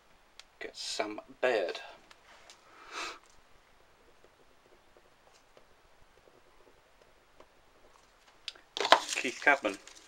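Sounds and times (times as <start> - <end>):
man talking: 0.6 - 2.0, 8.9 - 9.8.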